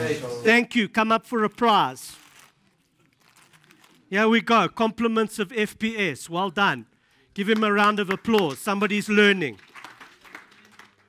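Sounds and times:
gift bag rustling: 0:01.3 - 0:04.5.

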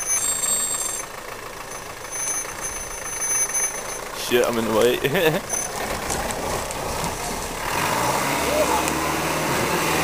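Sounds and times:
vehicle engine driving past: 0:01.7 - 0:10.0.

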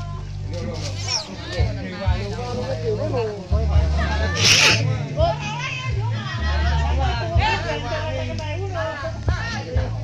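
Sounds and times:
music with heavy bass: 0:00.1 - 0:08.2
short hiss: 0:04.3 - 0:04.9.

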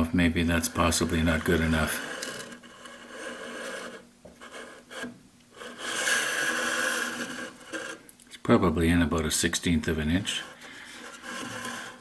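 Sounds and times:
wood scraping on sanding sleeve: 0:00.4 - 0:08.1, 0:09.8 - 0:12.0.

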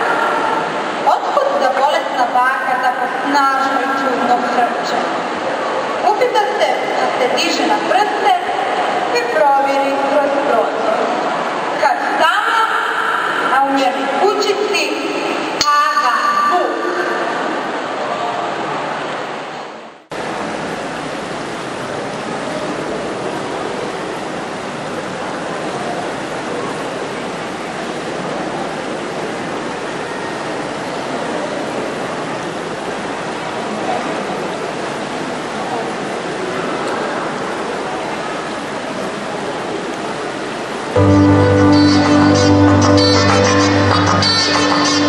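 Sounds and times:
voice: 0:00.0 - 0:05.2, 0:06.0 - 0:11.2, 0:11.8 - 0:17.4
steady rushing noise: 0:00.0 - 0:15.6.

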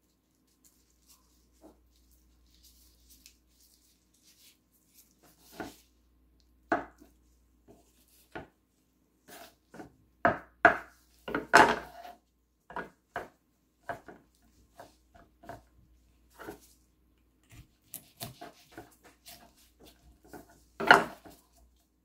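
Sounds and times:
knife chopping on wooden board: 0:09.3 - 0:12.0, 0:17.5 - 0:19.0.

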